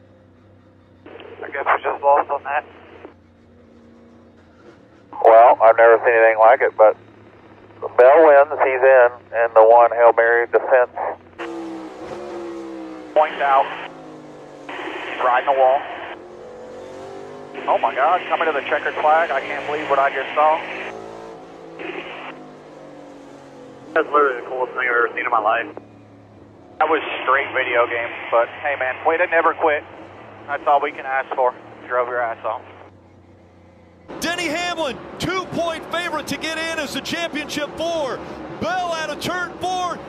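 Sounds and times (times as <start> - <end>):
race car engine drone: 0.0 - 40.0.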